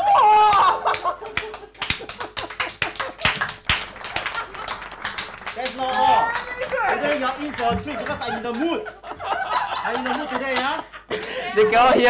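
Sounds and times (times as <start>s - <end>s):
people clapping: 0.3s - 11.5s
voices: 5.4s - 12.0s.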